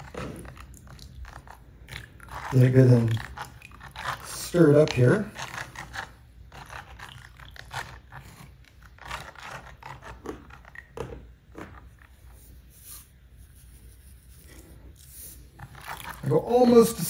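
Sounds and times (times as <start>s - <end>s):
liquid stirred in plastic tub: 0.0s - 17.0s.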